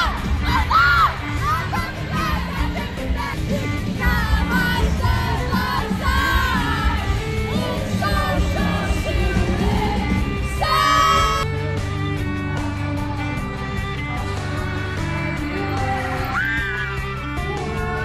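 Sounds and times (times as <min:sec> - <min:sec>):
people yelling and singing along: 0:00.0 - 0:11.5, 0:12.5 - 0:18.0
pop song with lead singer and band: 0:00.0 - 0:18.0.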